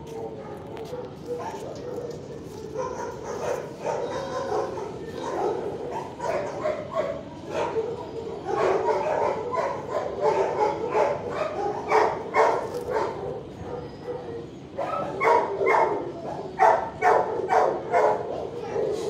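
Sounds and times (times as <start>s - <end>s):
dogs barking and yipping: 0.0s - 19.0s.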